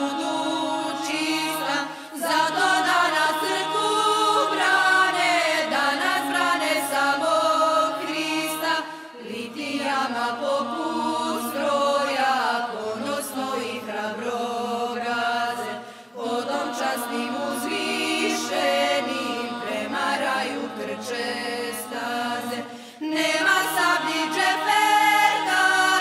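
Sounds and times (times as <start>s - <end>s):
voices singing a song: 0.0s - 26.0s.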